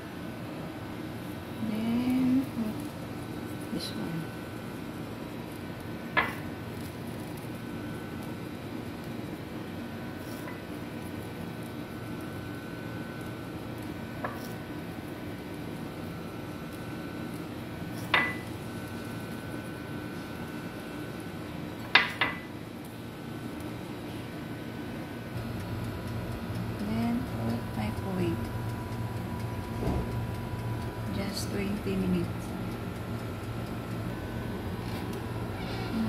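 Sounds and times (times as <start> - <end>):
kitchen room hum: 0.0 - 36.0
dial timer ticking: 25.4 - 34.6.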